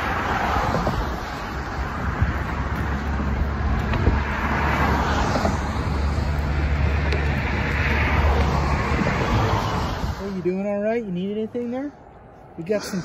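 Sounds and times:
vehicle passing by: 0.0 - 10.8
road traffic passing: 0.0 - 13.0.

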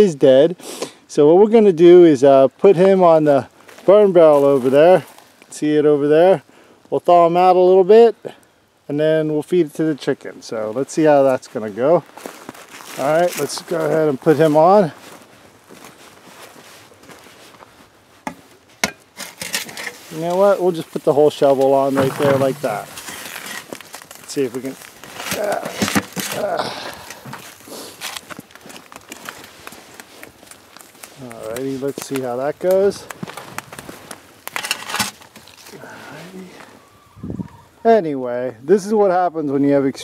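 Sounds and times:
wood fire crackling and popping: 18.2 - 35.9.

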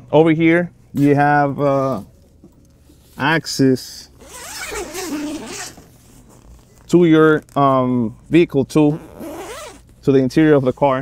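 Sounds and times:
zipper pulled open: 4.2 - 5.8, 8.9 - 9.9.

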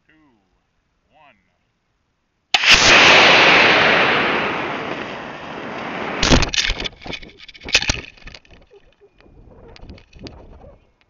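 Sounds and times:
ejection charge pops and rattling: 2.6 - 10.6.

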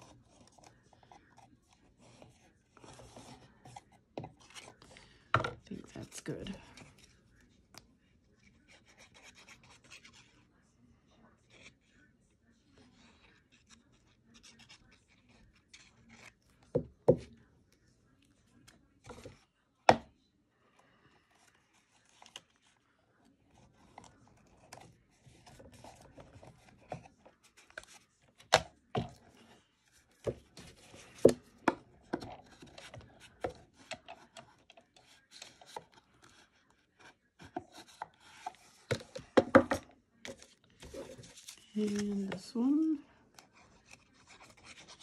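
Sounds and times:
paper rubbing and scraping: 43.5 - 45.0.

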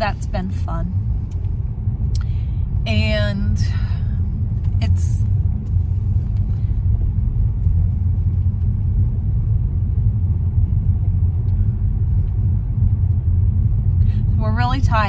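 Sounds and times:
car rumble from inside cabin: 0.0 - 15.0.

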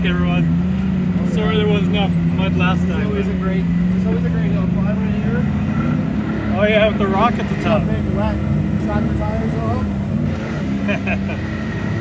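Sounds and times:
voices: 0.0 - 11.5
vehicle engine running: 0.0 - 12.0.

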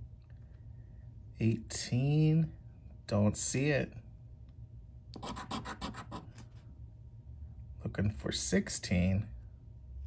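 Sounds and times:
coin scratching lottery ticket: 5.2 - 6.3.

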